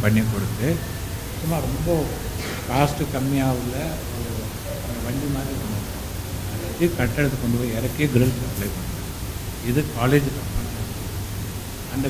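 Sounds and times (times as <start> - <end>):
man speaking into a microphone: 0.0 - 0.8, 1.4 - 5.8, 6.6 - 8.8, 9.6 - 10.8
steady hiss: 0.0 - 12.0.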